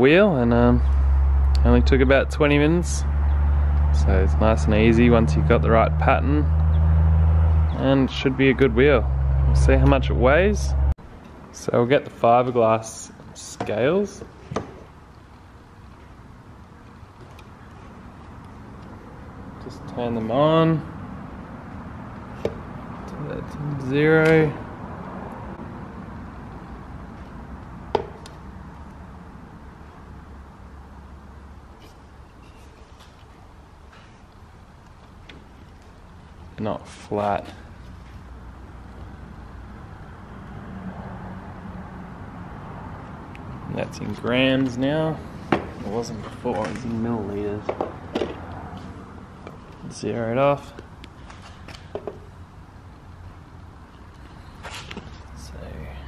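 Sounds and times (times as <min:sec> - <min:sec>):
low rumble and hiss: 0:00.0 - 0:03.1.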